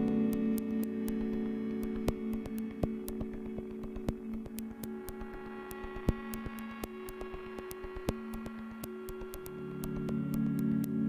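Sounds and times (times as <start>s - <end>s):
humming electronic drone: 0.0s - 11.0s
small irregular clicks: 0.0s - 11.0s.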